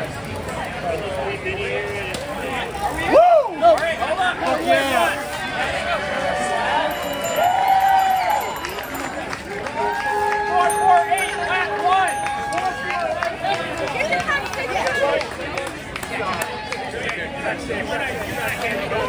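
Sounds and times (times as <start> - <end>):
people calling out and cheering: 2.7 - 19.0.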